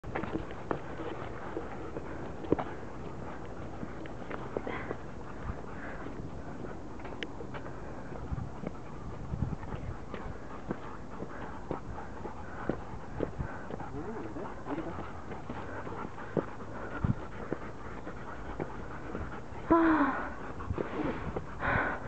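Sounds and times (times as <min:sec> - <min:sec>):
low outdoor background: 0:00.0 - 0:22.0.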